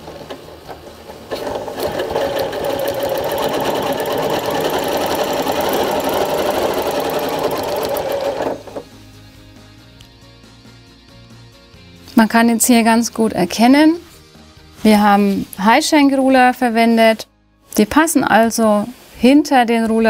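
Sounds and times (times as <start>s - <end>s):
sewing machine stitching: 0.0s - 8.9s.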